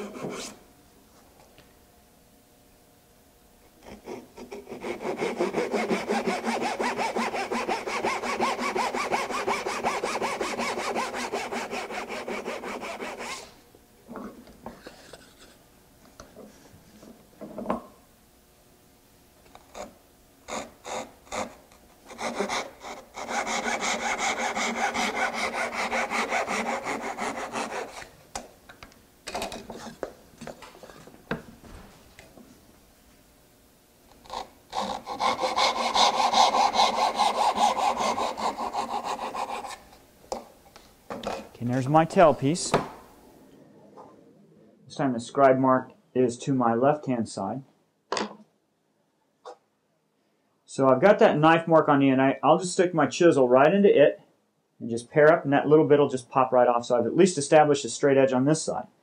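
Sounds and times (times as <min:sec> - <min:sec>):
hand saw cutting wood: 0:00.0 - 0:00.6, 0:03.8 - 0:13.5, 0:20.5 - 0:28.1, 0:34.2 - 0:39.8.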